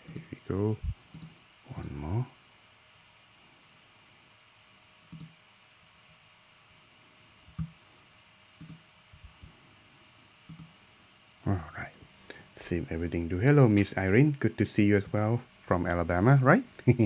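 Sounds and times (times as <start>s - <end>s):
computer clicks: 0.0s - 0.3s, 1.1s - 2.0s, 5.1s - 5.4s, 8.6s - 8.8s, 10.5s - 10.7s
person speaking: 12.6s - 17.0s.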